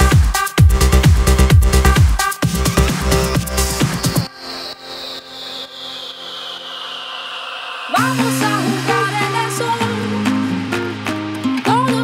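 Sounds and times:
electronic dance music: 0.0s - 12.0s
hissing noise sweep falling in pitch: 2.7s - 10.2s.

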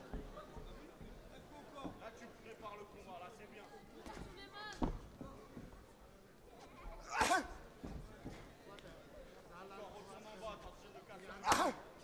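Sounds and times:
faint background hubbub: 0.0s - 12.0s.

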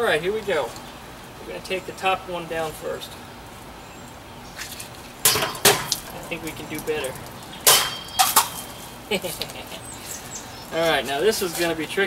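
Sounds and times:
machete striking metal can: 5.2s - 6.1s, 7.6s - 8.8s.

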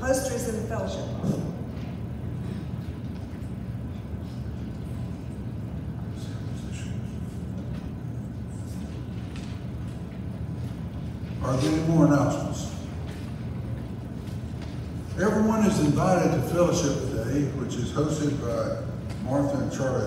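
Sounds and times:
low hum of hall: 0.0s - 20.0s
people shuffling and rustling: 1.1s - 20.0s.

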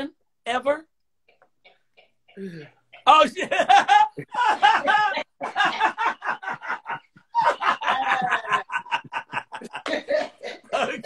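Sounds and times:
people cackling laughter: 3.3s - 11.0s.

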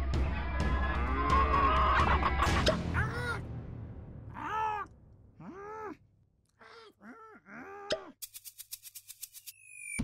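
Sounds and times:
upbeat cartoon music with clicks: 1.8s - 3.0s.

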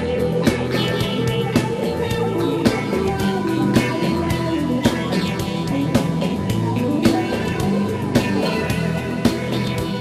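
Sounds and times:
rock band playing: 0.0s - 10.0s
steady drum beat: 0.0s - 10.0s.

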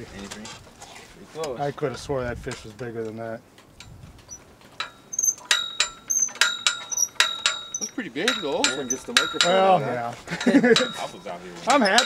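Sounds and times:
metal clinking: 4.7s - 12.0s.

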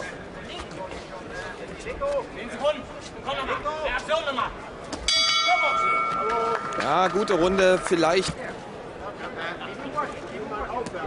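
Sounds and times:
boxing ring bell ringing: 5.1s - 8.2s.

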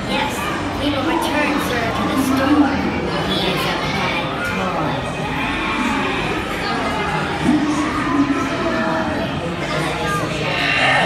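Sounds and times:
mix of voices: 0.0s - 11.0s.

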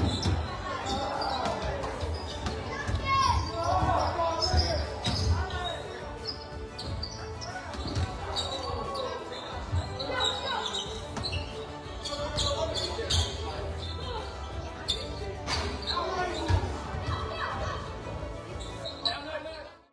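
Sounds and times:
people calling out in a hall: 0.0s - 6.3s, 7.2s - 19.8s.

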